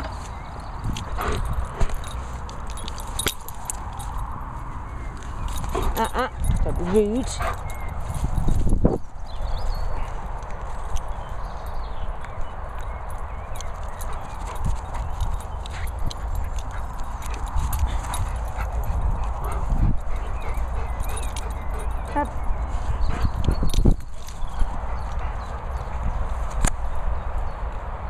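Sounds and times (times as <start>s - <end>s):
wind rumbling on microphone: 0.0s - 28.0s.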